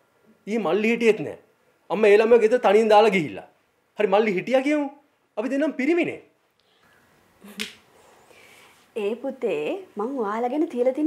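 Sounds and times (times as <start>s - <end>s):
man speaking: 0.4s - 6.4s.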